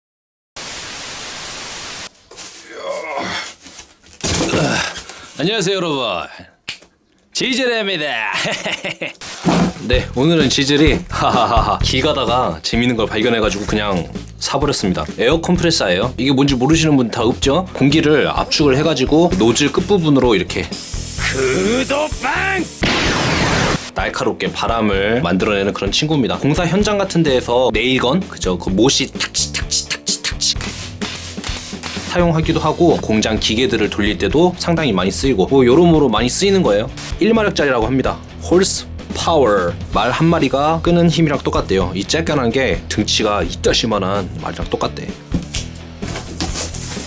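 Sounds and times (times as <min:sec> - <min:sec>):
steady static hiss: 0:00.6 - 0:02.2, 0:20.8 - 0:23.9
background music: 0:09.5 - 0:47.0
shouted attack call: 0:21.3 - 0:22.7.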